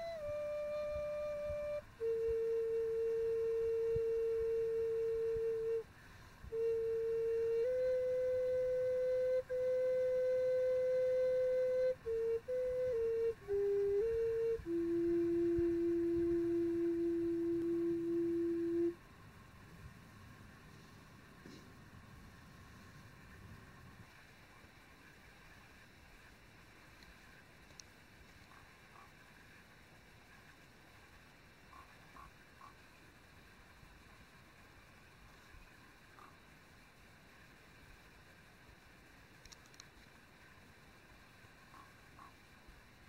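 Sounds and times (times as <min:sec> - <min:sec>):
flute playing slow melody: 0:00.0 - 0:19.0.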